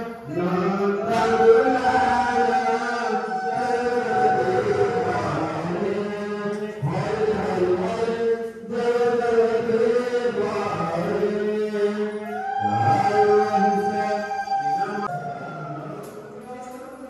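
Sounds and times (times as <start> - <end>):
voice chanting long notes: 0.0 - 16.7.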